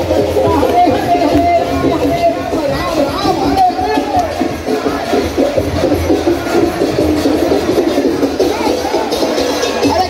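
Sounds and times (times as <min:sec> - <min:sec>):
crowd singing and chanting: 0:00.0 - 0:10.0.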